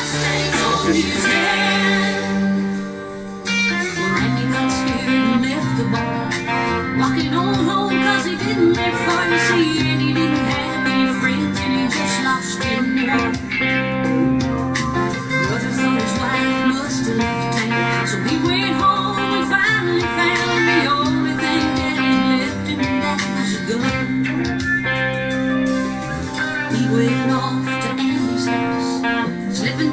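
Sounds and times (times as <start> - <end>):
backing music with steady beat: 0.0 - 29.9
electric guitar chords and fills: 0.0 - 29.9.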